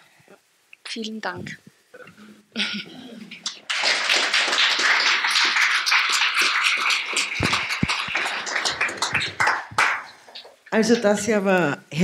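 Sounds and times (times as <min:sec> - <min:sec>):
audience applauding: 0:03.4 - 0:10.6.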